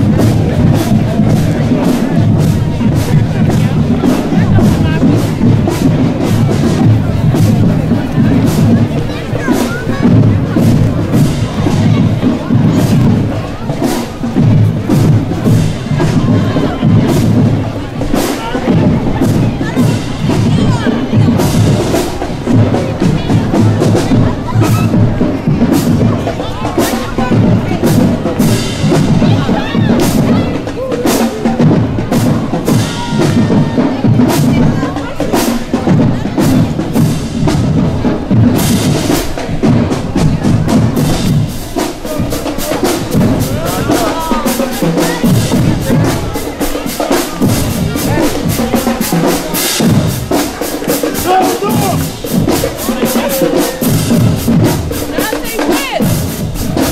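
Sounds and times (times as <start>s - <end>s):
crowd voices: 0.0s - 56.9s
drumline playing snare and bass drums: 0.0s - 56.9s.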